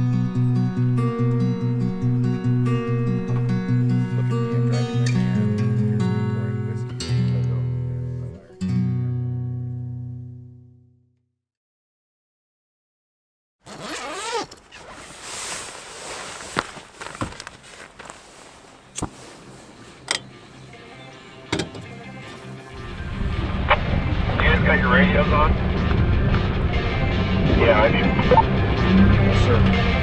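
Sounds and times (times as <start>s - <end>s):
truck engine and tyres rumbling: 0.0s - 8.5s, 13.7s - 30.0s
sharp clicks and knocks: 21.5s - 21.9s.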